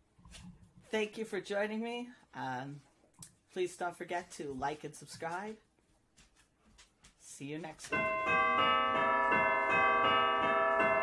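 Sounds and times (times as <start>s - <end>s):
chiming bells music: 7.9s - 11.0s.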